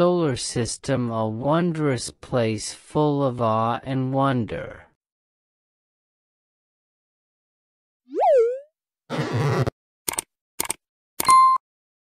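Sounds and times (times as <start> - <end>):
cartoon boing sound effect: 8.1 - 8.7.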